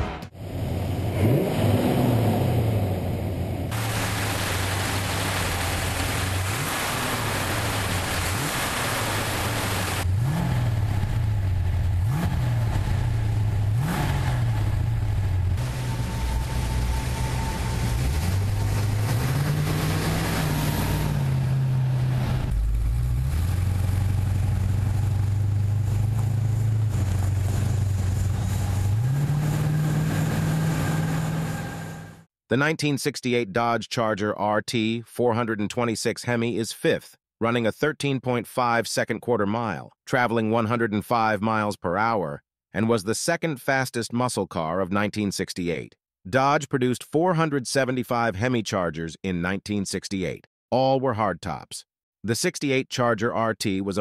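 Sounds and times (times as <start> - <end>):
car engine revving: 0.0 - 32.3.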